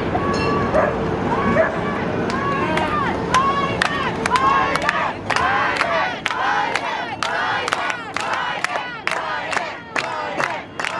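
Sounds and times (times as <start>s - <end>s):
people shouting and whooping: 0.0s - 6.1s
crowd din: 0.0s - 10.9s.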